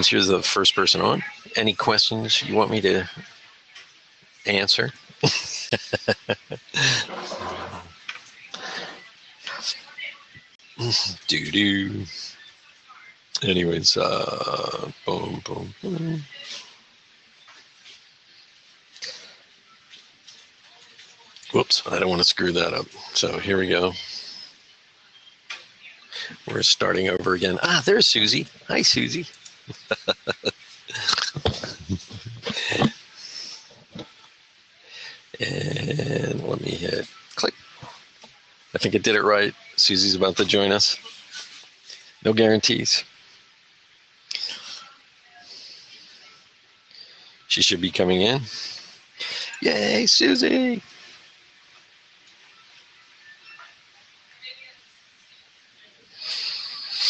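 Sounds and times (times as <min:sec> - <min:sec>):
room noise: 0:02.4 - 0:57.0
man laughing: 0:05.2 - 0:07.5, 0:29.7 - 0:32.9
faint breathy hisses: 0:06.7 - 0:07.9, 0:08.5 - 0:09.8, 0:18.3 - 0:19.6, 0:23.9 - 0:24.7, 0:26.1 - 0:26.5, 0:30.9 - 0:33.8, 0:34.8 - 0:35.8, 0:44.3 - 0:47.5, 0:48.4 - 0:49.6, 0:56.1 - 0:57.0.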